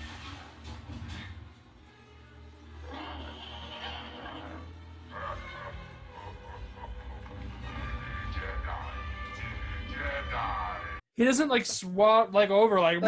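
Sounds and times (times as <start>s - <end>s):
film music through tv speaker: 0.0s - 11.0s.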